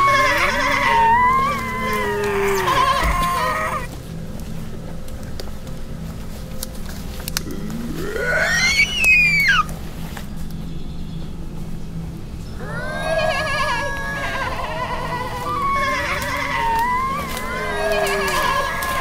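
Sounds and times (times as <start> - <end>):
person shrieking: 0.0 - 3.9, 7.5 - 9.7, 12.6 - 19.0
voices wailing together: 0.0 - 3.9, 7.4 - 9.7, 12.6 - 19.0.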